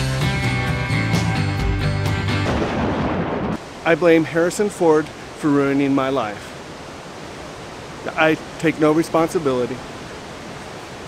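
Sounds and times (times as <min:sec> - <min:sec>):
background music: 0:00.0 - 0:02.9
deep boom rumbling: 0:02.4 - 0:03.6
man speaking: 0:03.9 - 0:06.5, 0:08.1 - 0:09.8.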